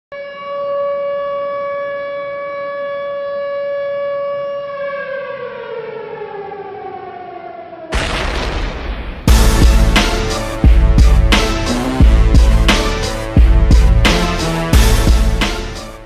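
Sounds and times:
siren-like wail: 0:00.1 - 0:16.0
sudden loud hit: 0:07.9 - 0:13.0.

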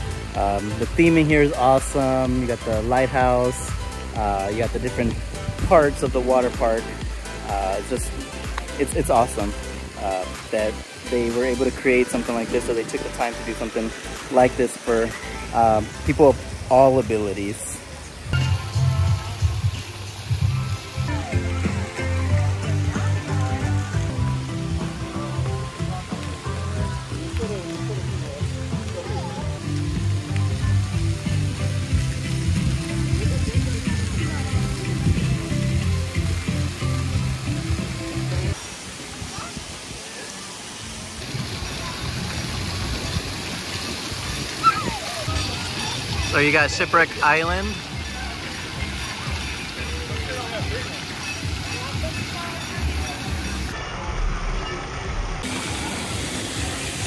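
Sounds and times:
music with bass line: 0:00.0 - 0:17.1, 0:18.3 - 0:38.6, 0:44.2 - 0:55.5
splashing water hiss: 0:00.0 - 0:53.8, 0:55.4 - 0:57.0.

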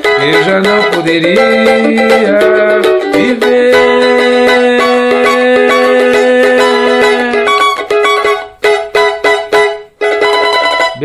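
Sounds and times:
cavaquinho strumming: 0:00.0 - 0:11.0.

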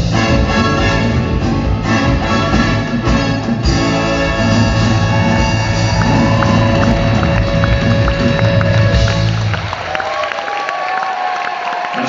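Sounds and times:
drums and bass beat: 0:00.0 - 0:09.9
live rock band playing: 0:00.0 - 0:09.9.

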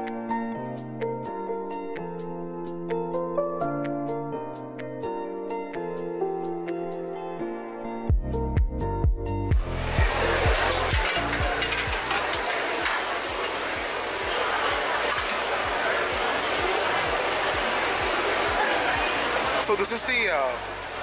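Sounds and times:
music bass beat thudding: 0:08.1 - 0:10.6.

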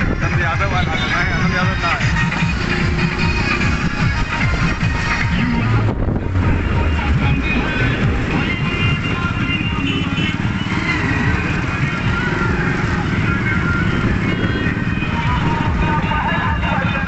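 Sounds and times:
motorcycle engines running: 0:00.0 - 0:17.0
music playing: 0:00.0 - 0:17.0.

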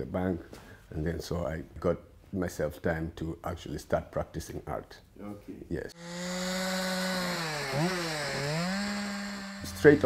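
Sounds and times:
chainsaw cutting log: 0:06.0 - 0:10.0.

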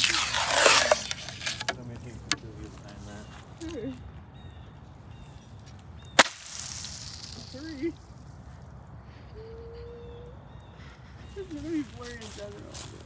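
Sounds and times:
sharp crack: 0:00.0 - 0:02.4, 0:06.0 - 0:08.4.

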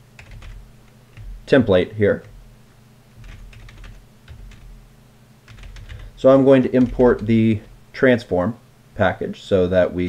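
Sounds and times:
computer keyboard typing: 0:00.2 - 0:01.6, 0:03.2 - 0:04.8, 0:05.5 - 0:07.7.

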